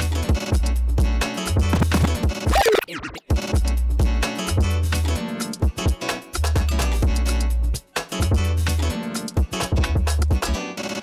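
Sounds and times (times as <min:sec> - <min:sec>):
hip-hop beat with heavy bass: 0:00.0 - 0:11.0
record scratching: 0:01.8 - 0:03.4.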